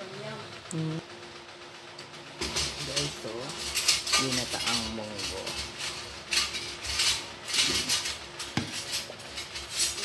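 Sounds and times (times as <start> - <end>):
metal spoon scraping metal pot: 3.5 - 10.0.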